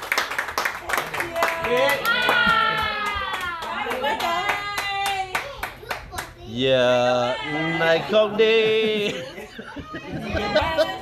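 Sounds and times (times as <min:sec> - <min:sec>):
people clapping a steady beat: 0:00.0 - 0:06.4.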